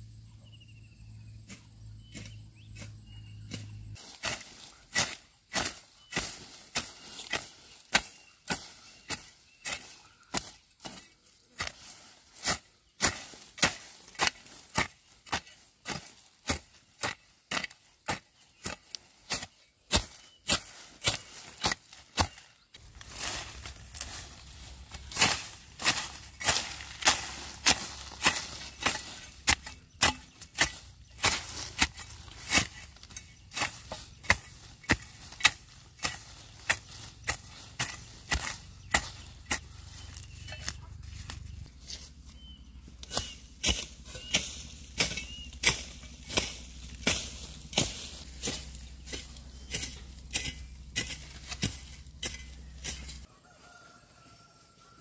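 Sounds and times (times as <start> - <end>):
hoe chopping into soil: 1.5 - 53.3.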